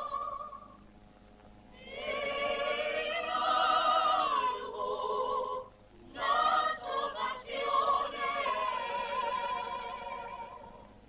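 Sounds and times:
choir singing with vibrato: 0.0s - 0.8s, 1.7s - 11.0s.

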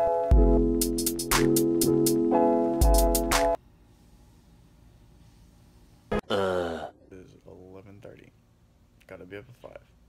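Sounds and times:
man groaning: 6.2s - 7.1s.

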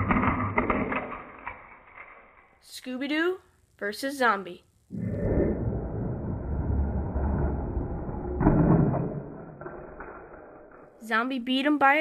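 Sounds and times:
toy trucks rolling on plastic track: 0.0s - 2.7s.

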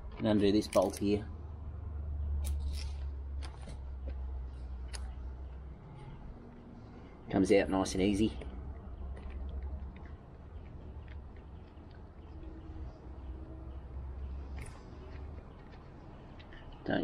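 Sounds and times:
low rumble of handling noise: 0.0s - 17.0s.

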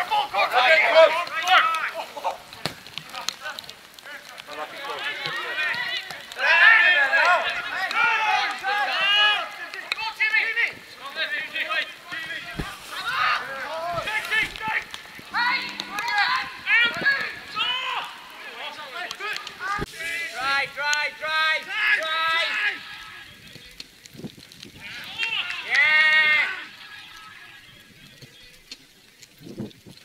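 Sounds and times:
players shouting calls: 0.0s - 23.9s, 24.8s - 28.4s.

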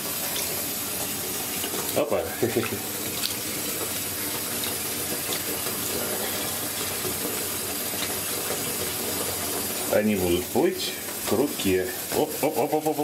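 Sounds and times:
tap water filling bathtub: 0.0s - 13.0s.

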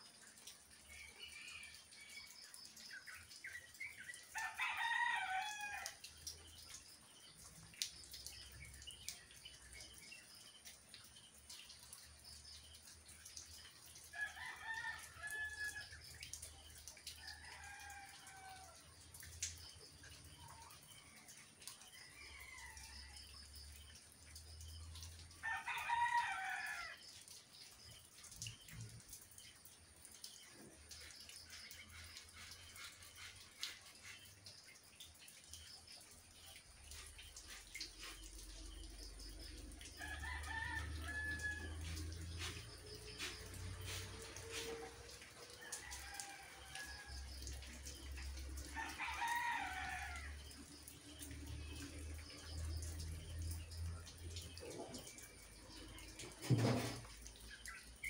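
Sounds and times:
rain hiss: 0.0s - 58.0s
rooster crowing: 4.4s - 6.0s, 25.4s - 26.9s, 40.0s - 42.1s, 48.8s - 50.4s.

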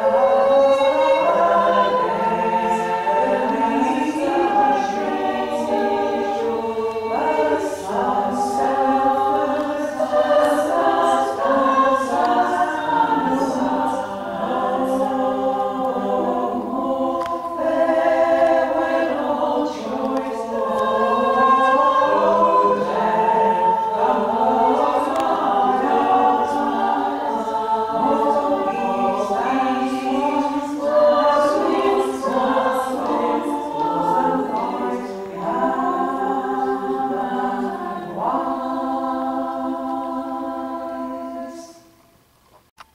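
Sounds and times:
women singing a cappella in harmony: 0.0s - 42.2s.

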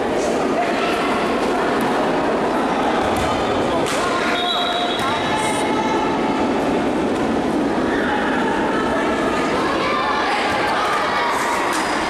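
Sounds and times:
players' voices: 0.0s - 12.0s
reverberant indoor match din: 0.0s - 12.0s.

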